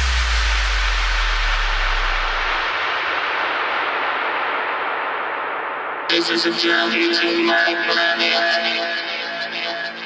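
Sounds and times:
deep sub-bass boom: 0:00.0 - 0:06.0
white-noise sweep: 0:00.0 - 0:09.0.

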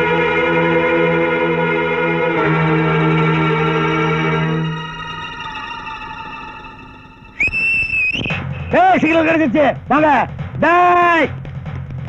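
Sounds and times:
held musical chord: 0:00.0 - 0:07.4
loud high whistle-like tone: 0:04.6 - 0:09.2.

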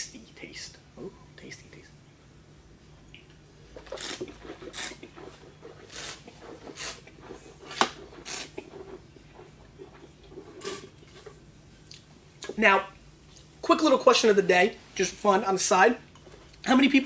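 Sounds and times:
person slurping wine: 0:03.9 - 0:05.2, 0:05.8 - 0:07.2, 0:08.2 - 0:08.7, 0:10.4 - 0:11.1.

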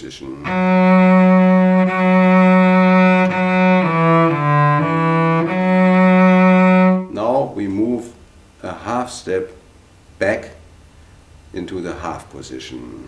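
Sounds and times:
man speaking: 0:00.0 - 0:00.5, 0:11.6 - 0:13.0
solo cello bowing: 0:00.3 - 0:07.2.

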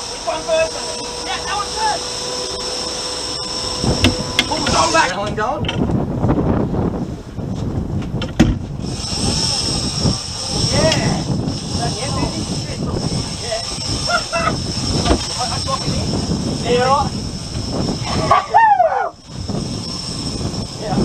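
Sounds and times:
steady high whine: 0:00.0 - 0:05.5, 0:08.8 - 0:21.0
outboard boat motors running: 0:00.0 - 0:21.0
water wash and wind: 0:00.0 - 0:21.0
people shouting excitedly: 0:18.1 - 0:19.2.

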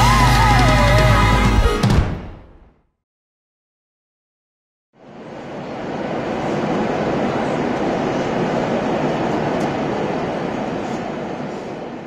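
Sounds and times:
airliner cabin noise: 0:05.0 - 0:12.0.

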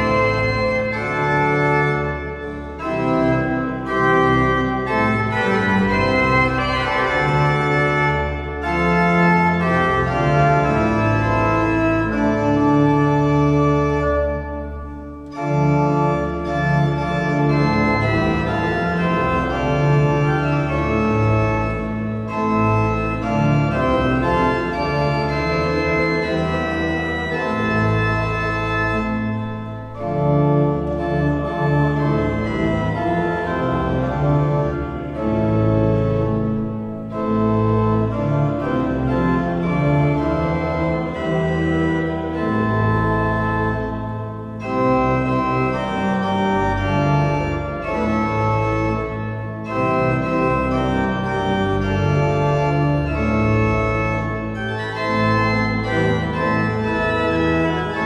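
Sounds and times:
pipe organ playing hymn: 0:00.0 - 0:58.0.

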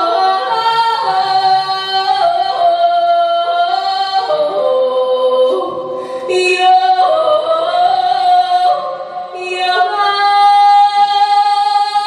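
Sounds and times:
woman singing folk song: 0:00.0 - 0:12.0.

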